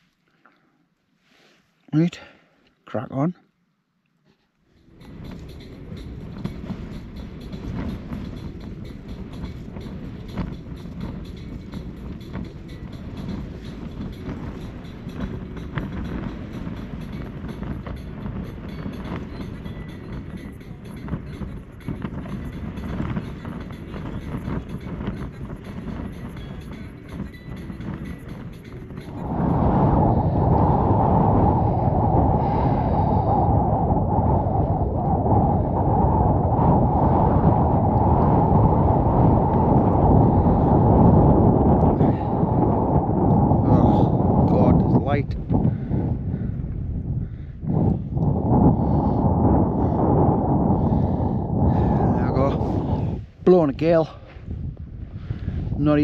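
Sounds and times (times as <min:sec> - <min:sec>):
wind blowing onto microphone: 0:04.7 - 0:56.0
wind battering a tent: 0:04.8 - 0:56.0.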